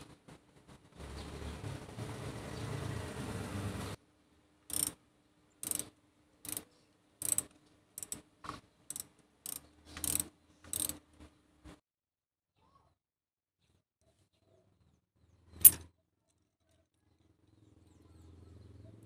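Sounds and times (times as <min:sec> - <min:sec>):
ratchet wrench clicking: 0:04.7 - 0:05.0, 0:05.6 - 0:08.2, 0:08.9 - 0:11.0.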